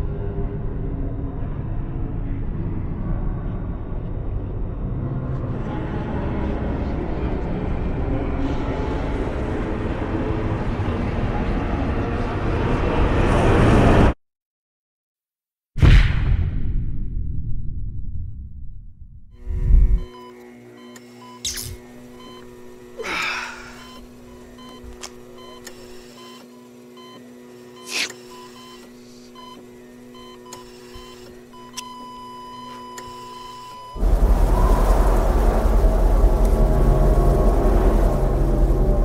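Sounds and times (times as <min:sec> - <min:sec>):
loud low rumble: 0:00.0 - 0:14.1, 0:15.8 - 0:20.1, 0:34.0 - 0:39.0
low steady hum: 0:28.3 - 0:39.0
whoosh: 0:34.0 - 0:39.0.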